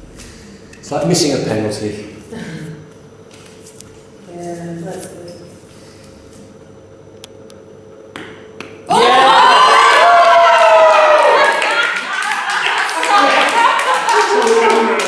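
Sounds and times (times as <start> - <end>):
people clapping: 8.6 - 15.0
group cheering and shouting: 8.9 - 15.0.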